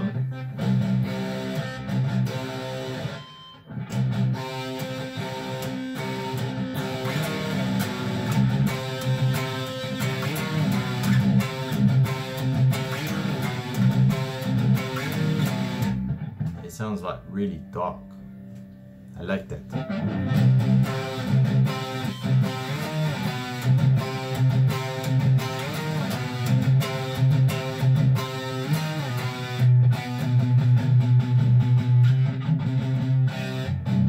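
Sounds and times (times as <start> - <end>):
electric guitar low riff: 0.0 - 34.0.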